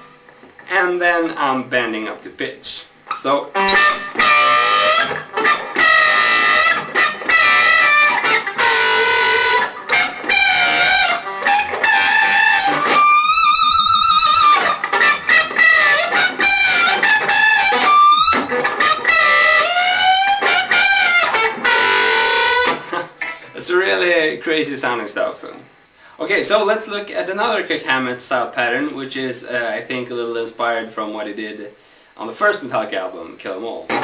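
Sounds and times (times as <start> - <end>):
electric guitar bent note squeals: 3.1 - 23.6.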